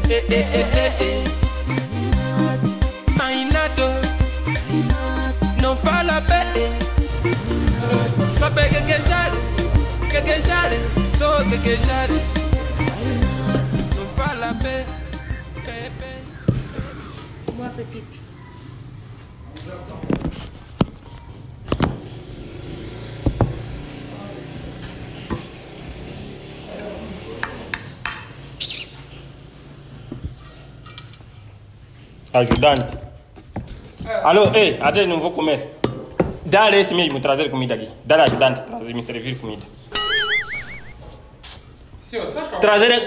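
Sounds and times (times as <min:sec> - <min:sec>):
wobbling whistle-like tone: 0:39.9 - 0:41.1.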